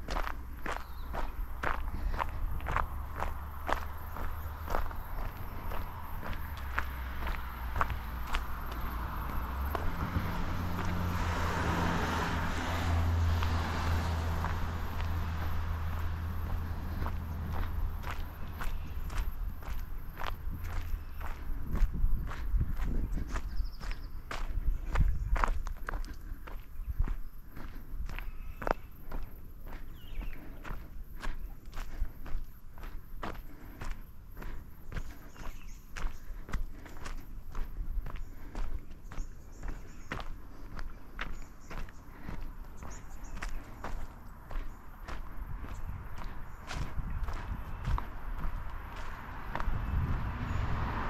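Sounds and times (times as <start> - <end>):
footsteps on dirt track: 0.0 - 51.0.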